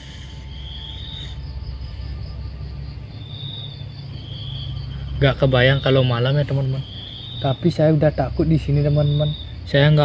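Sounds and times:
insects chirring: 0.0s - 10.0s
steady low hum: 0.0s - 10.0s.

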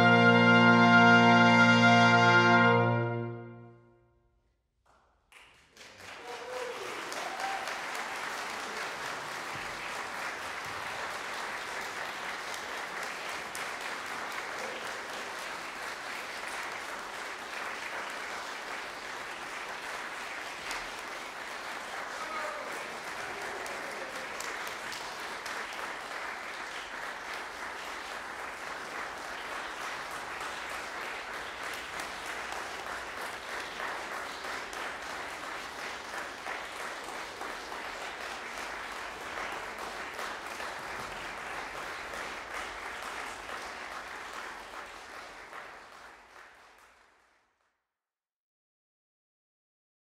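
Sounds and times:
audience applauding: 4.9s - 47.6s.

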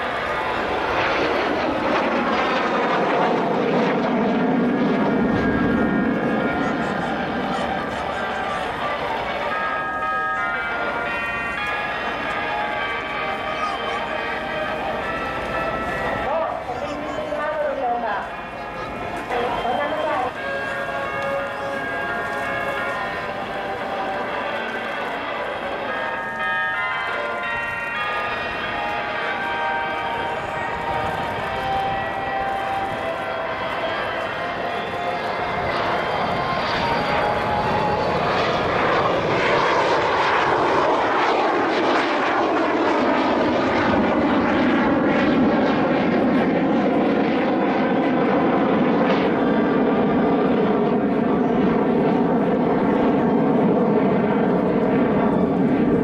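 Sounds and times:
jet engines flying past: 0.0s - 56.0s.

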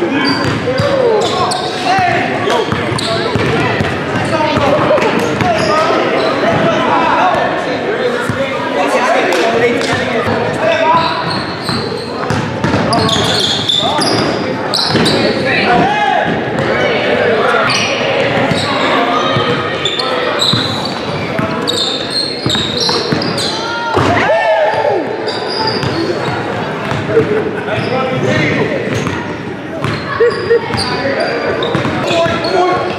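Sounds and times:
players' voices and chatter: 0.0s - 32.9s
sneakers squeaking: 0.0s - 32.9s.

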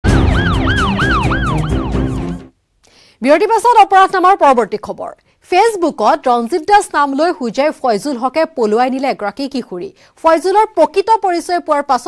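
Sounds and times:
siren sweeping up and down: 0.0s - 2.5s.

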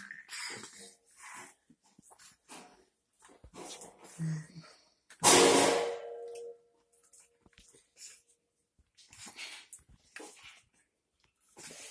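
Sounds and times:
children sucking from feeding bottles: 0.0s - 2.4s.

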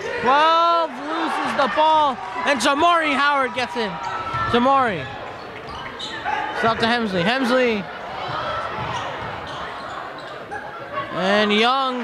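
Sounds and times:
crowd and player voices: 0.0s - 12.0s
sneakers squeaking on hardwood: 4.0s - 6.9s, 8.2s - 10.9s.

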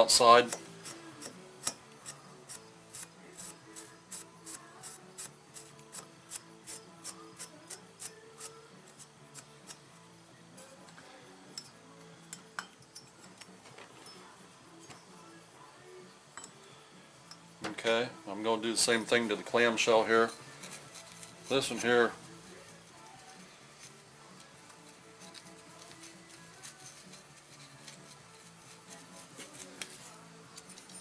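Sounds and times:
scouring pad rubbing metal: 2.0s - 9.8s, 19.9s - 30.7s.

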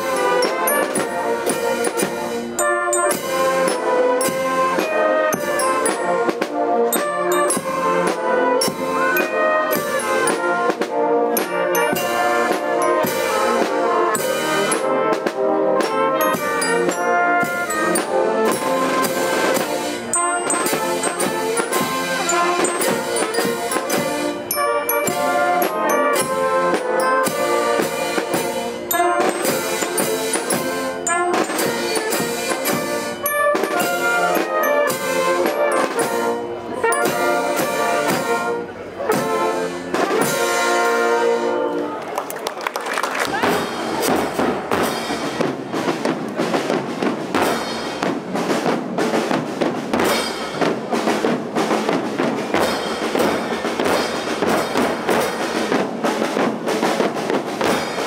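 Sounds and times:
trumpets and trombones: 0.0s - 42.2s, 43.4s - 58.0s
drums: 0.0s - 58.0s.

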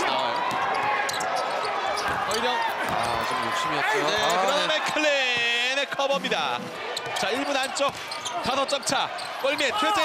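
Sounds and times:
arena crowd noise: 0.0s - 10.0s
sneakers squeaking on hardwood: 0.5s - 3.4s, 4.0s - 4.6s, 7.0s - 9.7s.

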